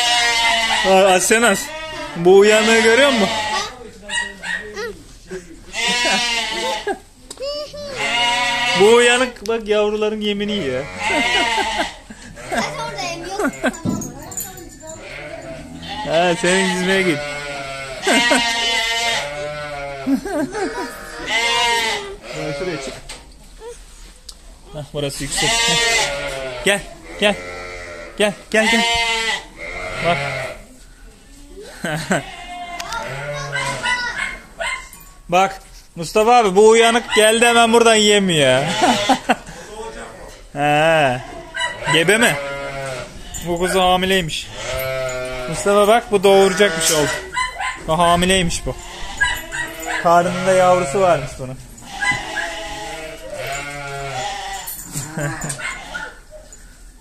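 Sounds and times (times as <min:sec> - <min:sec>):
sheep bleating: 0:00.0 - 0:03.8, 0:05.7 - 0:09.3, 0:10.4 - 0:13.8, 0:14.9 - 0:23.1, 0:25.3 - 0:30.7, 0:31.9 - 0:34.0, 0:38.4 - 0:39.4, 0:40.6 - 0:47.4, 0:48.2 - 0:56.2.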